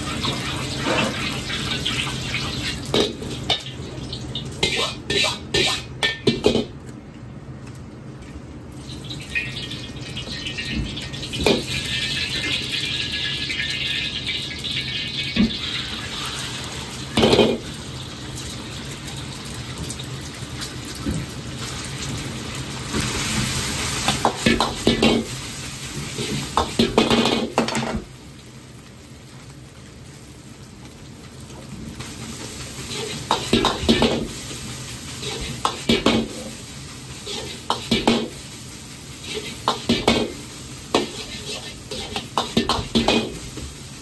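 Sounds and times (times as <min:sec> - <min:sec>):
gas burner roaring: 0:00.0 - 0:07.9, 0:08.5 - 0:44.0
oil and food sizzling: 0:00.0 - 0:44.0.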